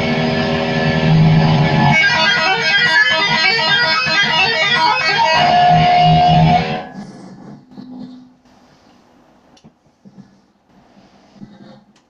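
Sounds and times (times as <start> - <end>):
electric guitar riff: 0.0 - 7.0.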